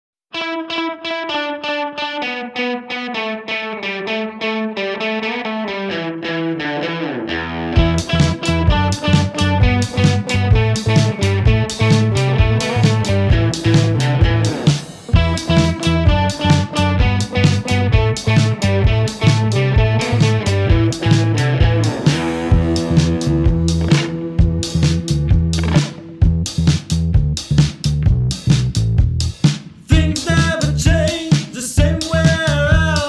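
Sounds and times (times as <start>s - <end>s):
electric guitar repeated notes: 0.3s - 27.3s
drums and bass: 7.7s - 33.0s.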